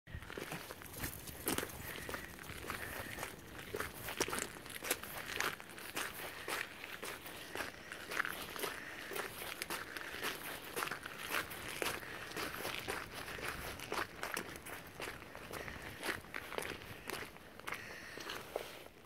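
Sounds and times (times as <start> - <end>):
footsteps on wet shingle and sand: 0.1 - 19.0.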